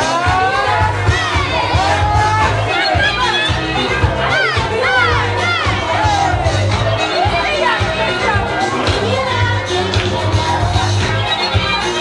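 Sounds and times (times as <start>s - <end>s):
club music with bass beat: 0.0s - 12.0s
crowd talking and shouting: 0.0s - 12.0s.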